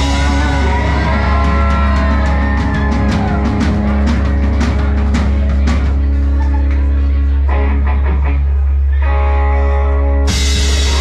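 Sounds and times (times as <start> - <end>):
live country band playing: 0.0 - 11.0.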